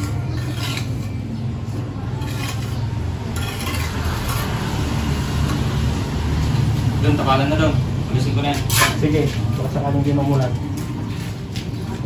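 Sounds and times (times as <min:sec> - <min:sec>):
trowel scraping wet cement: 0:00.0 - 0:05.1, 0:08.5 - 0:09.6.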